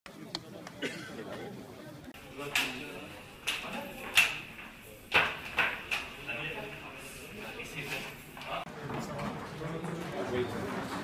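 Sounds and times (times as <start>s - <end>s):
indistinct chatter of people: 0.1s - 11.0s.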